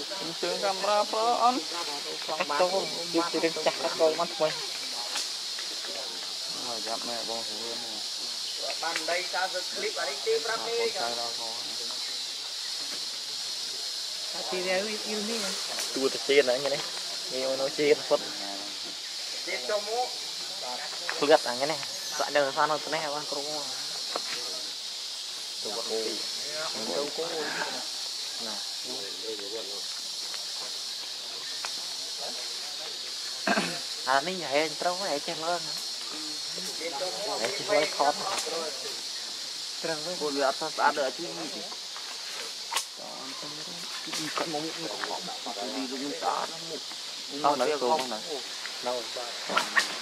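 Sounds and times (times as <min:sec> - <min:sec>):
people talking: 0:00.0 - 0:05.2, 0:05.8 - 0:12.3, 0:13.6 - 0:18.8, 0:25.6 - 0:29.9, 0:32.1 - 0:39.0, 0:39.8 - 0:41.8, 0:43.0 - 0:50.0
insects hissing in forest: 0:00.0 - 0:50.0.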